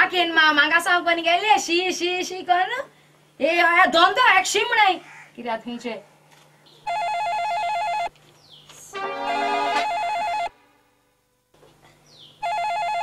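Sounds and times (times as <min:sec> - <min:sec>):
electronic telephone ringer warbling: 0:06.8 - 0:08.1, 0:09.0 - 0:10.6, 0:12.4 - 0:13.0.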